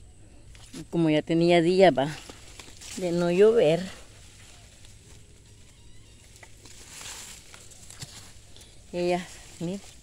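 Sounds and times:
soft rustling: 0:02.0 - 0:10.0.

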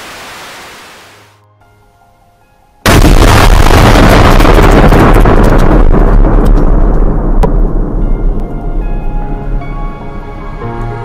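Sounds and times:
background music: 0:01.3 - 0:02.9, 0:07.5 - 0:11.0
explosion rumble: 0:02.8 - 0:08.4.

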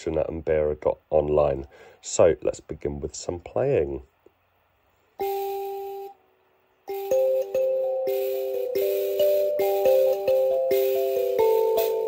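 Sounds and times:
mbira notes with buzzing rattlers: 0:05.2 - 0:06.2, 0:06.8 - 0:12.0.

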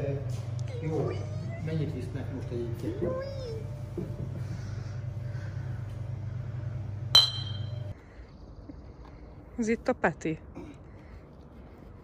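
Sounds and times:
steady low hum: 0:00.0 - 0:12.0
glass beer mug clink: 0:07.2 - 0:07.8.

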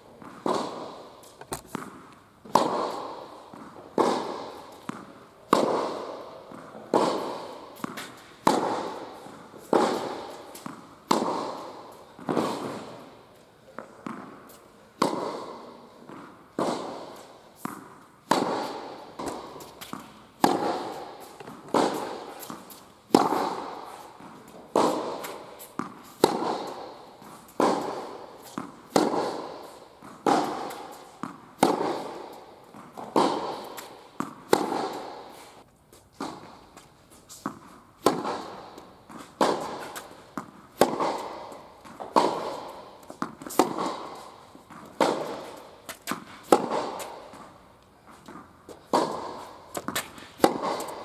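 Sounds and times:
racket hitting tennis ball: 0:00.1 - 0:51.0
tennis ball bouncing on court: 0:00.2 - 0:51.0.

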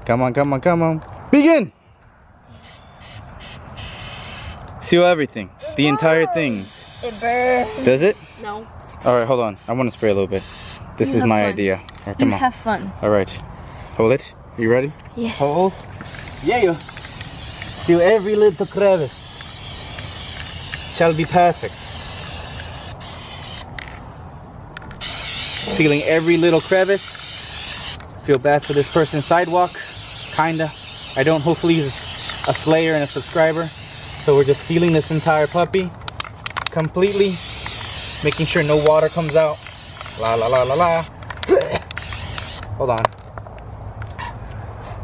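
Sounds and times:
aerosol can spraying: 0:02.6 - 0:04.7, 0:05.6 - 0:08.7, 0:09.6 - 0:10.8, 0:16.0 - 0:23.7, 0:25.0 - 0:28.0, 0:28.6 - 0:35.7, 0:37.0 - 0:41.1, 0:41.8 - 0:42.7.

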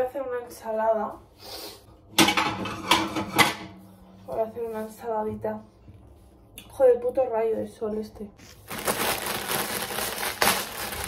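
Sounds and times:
dishes and cutlery clattering: 0:02.2 - 0:03.8.

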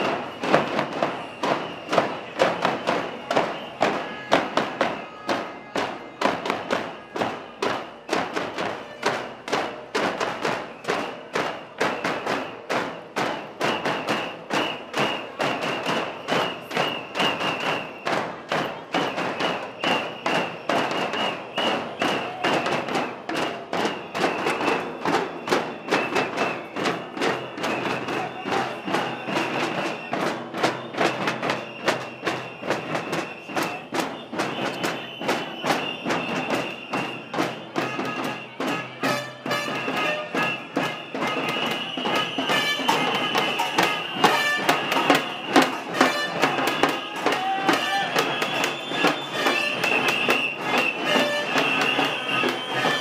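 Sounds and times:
marching drums beaten: 0:00.0 - 0:53.0.

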